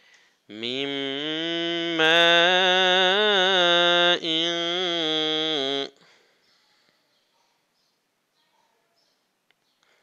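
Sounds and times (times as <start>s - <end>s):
man reciting in melodic style: 0.5s - 6.2s.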